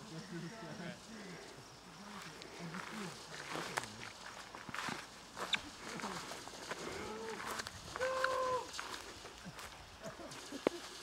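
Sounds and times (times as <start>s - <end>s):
footsteps through long grass: 0.0s - 11.0s
faint voices: 5.4s - 10.9s.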